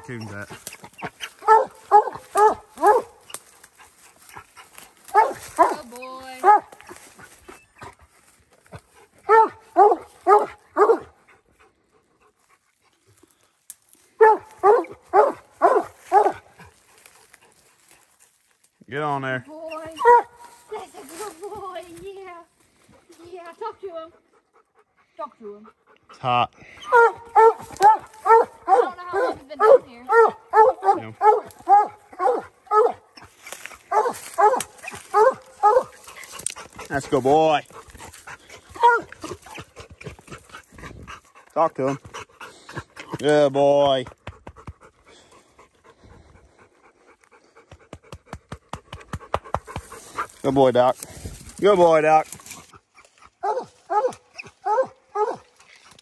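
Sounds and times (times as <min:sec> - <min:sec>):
dog panting hard: 0:00.0 - 0:13.2, 0:22.9 - 0:50.4
dog barking: 0:01.2 - 0:03.2, 0:05.1 - 0:07.0, 0:09.3 - 0:11.2, 0:14.2 - 0:16.5, 0:20.0 - 0:20.8, 0:26.8 - 0:33.1, 0:33.8 - 0:36.2, 0:38.5 - 0:39.7, 0:53.4 - 0:55.5.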